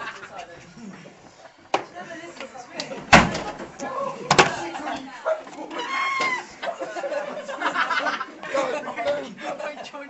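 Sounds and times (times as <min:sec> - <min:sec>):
scattered voices: 0:00.0 - 0:10.0.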